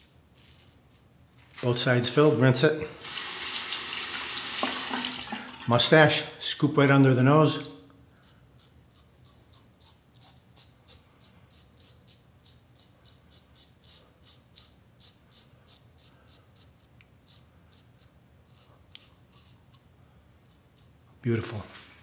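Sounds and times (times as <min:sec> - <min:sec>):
razor scraping stubble: 0:08.2 - 0:21.0.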